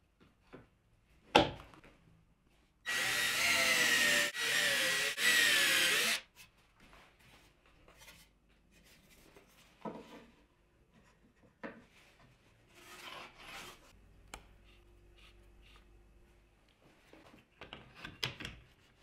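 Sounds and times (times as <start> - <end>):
cordless drill drilling into wood: 2.9 - 6.2.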